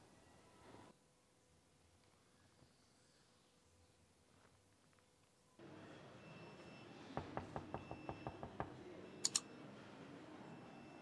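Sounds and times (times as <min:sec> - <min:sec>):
mouse double-click: 0:09.2 - 0:09.4.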